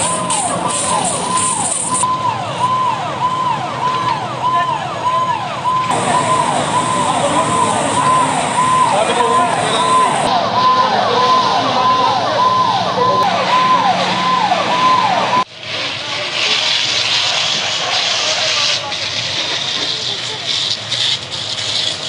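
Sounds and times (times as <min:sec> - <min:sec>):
emergency vehicle siren: 0:00.0 - 0:15.6.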